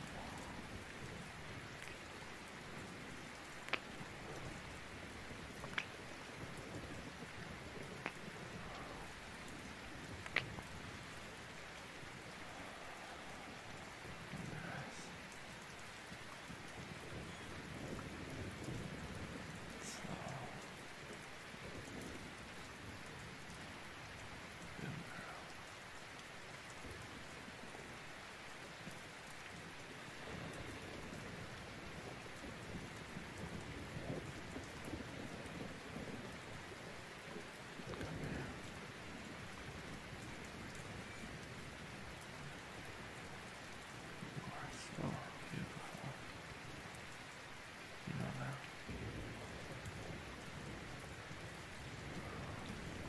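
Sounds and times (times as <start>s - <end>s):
rain pattering: 0.0s - 53.0s
soft low rumbles: 0.0s - 53.0s.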